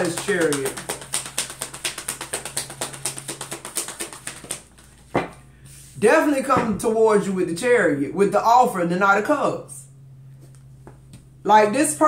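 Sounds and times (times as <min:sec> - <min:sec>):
cards being shuffled: 0:00.0 - 0:05.2.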